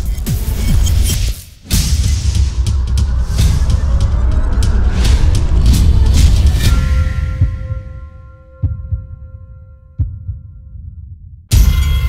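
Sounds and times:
deep heartbeat-like thumps: 1.7s - 12.0s.

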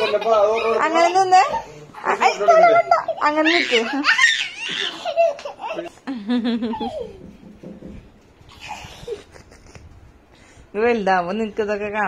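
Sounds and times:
children laughing and giggling: 0.0s - 1.8s, 2.4s - 7.6s, 8.4s - 10.3s.

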